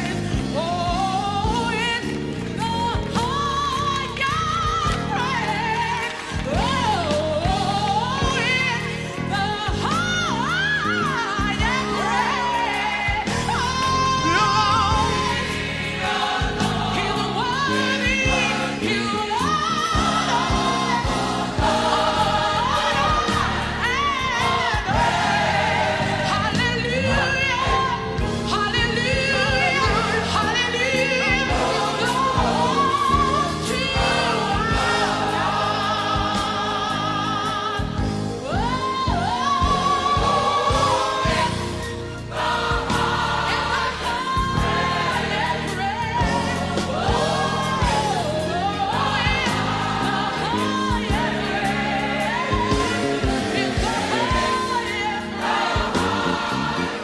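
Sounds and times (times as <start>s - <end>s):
band playing steady beat: 0.0s - 57.0s
choir singing: 0.0s - 57.0s
woman singing lead: 0.0s - 57.0s.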